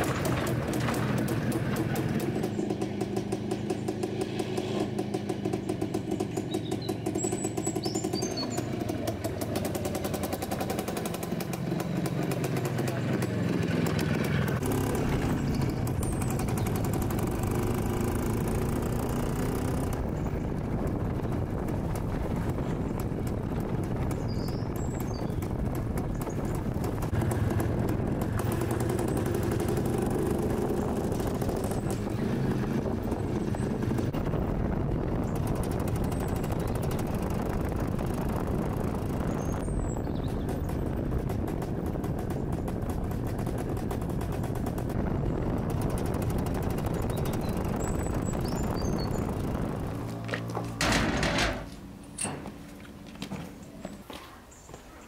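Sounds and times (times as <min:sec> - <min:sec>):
motorcycle engine revving: 0:00.0 - 0:52.0.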